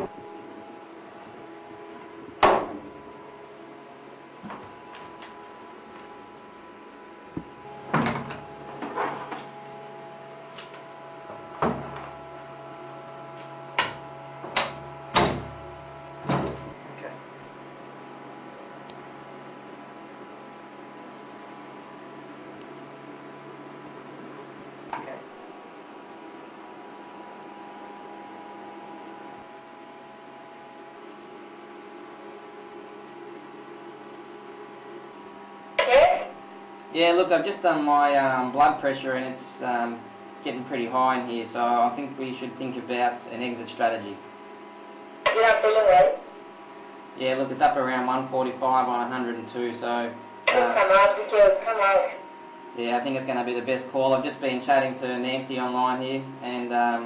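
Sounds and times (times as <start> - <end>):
steady hum: 0.0 - 57.0.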